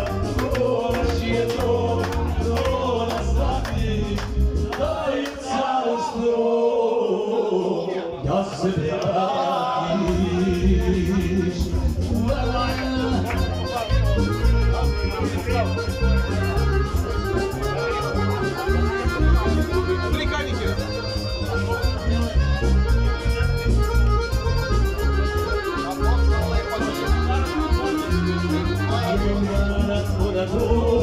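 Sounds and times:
pulsing bass beat: 0:00.0 - 0:05.1, 0:10.0 - 0:31.0
accordion folk music: 0:00.0 - 0:05.8, 0:09.3 - 0:31.0.

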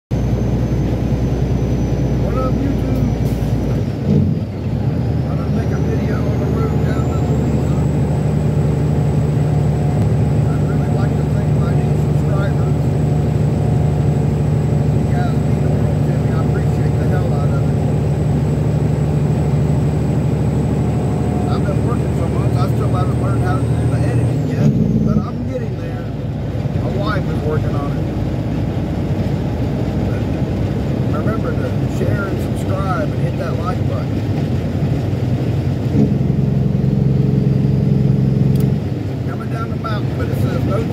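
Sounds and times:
truck diesel engine drone: 0:00.1 - 0:40.9.

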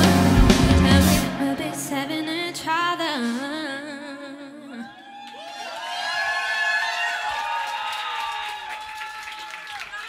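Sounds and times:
band playing closing chord: 0:00.0 - 0:02.6
woman singing: 0:00.0 - 0:05.0
audience whooping and cheering: 0:04.8 - 0:10.0.

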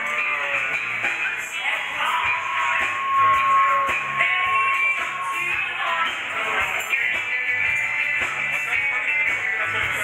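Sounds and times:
dance music with steady beat: 0:00.0 - 0:10.0
long held high note: 0:01.7 - 0:06.9.

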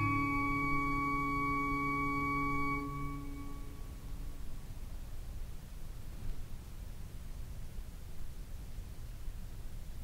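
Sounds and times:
pipe organ sustained chord: 0:00.0 - 0:04.3.

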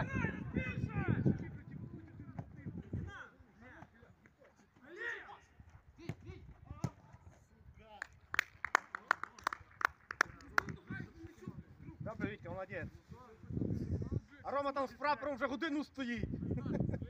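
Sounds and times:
sharp hand claps: 0:08.0 - 0:10.8.

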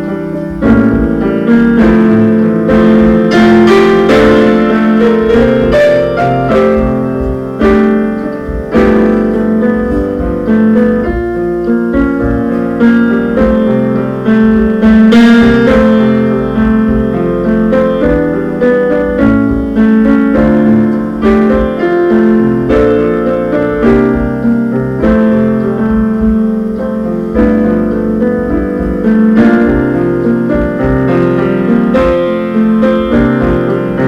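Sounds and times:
piano chords and melody: 0:00.0 - 0:34.0.

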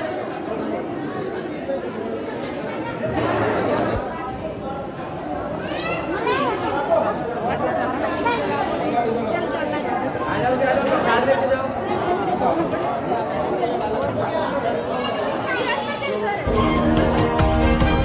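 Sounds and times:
crowd chattering: 0:00.0 - 0:18.0.

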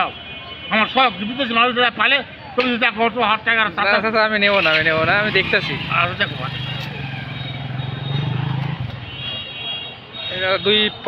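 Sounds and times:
voices: 0:00.0 - 0:11.0
vehicle engine humming: 0:04.4 - 0:09.4.

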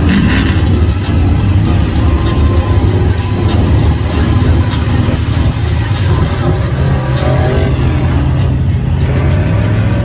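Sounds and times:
music playing: 0:00.0 - 0:10.0
truck engine driving through mud: 0:00.0 - 0:10.0.

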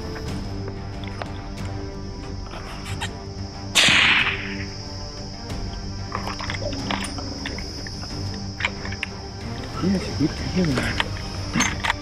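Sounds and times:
background music: 0:00.0 - 0:12.0
rifle shot: 0:03.7 - 0:04.6.

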